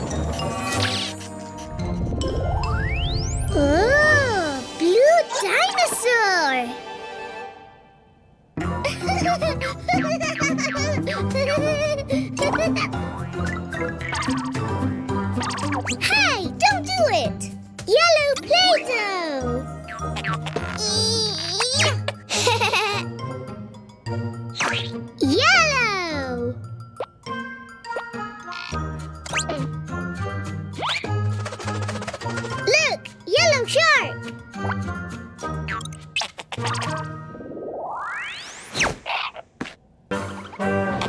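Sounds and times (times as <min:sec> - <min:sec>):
high wordless cartoon vocals: 0:03.5 - 0:06.7, 0:15.9 - 0:19.7, 0:20.7 - 0:22.0, 0:25.2 - 0:26.6.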